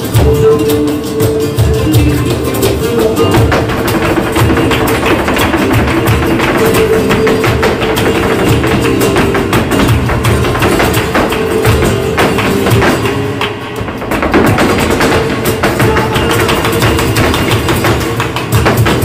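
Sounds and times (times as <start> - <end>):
acoustic flamenco guitar: 0.0 - 19.0
flamenco footwork on stage: 0.0 - 19.0.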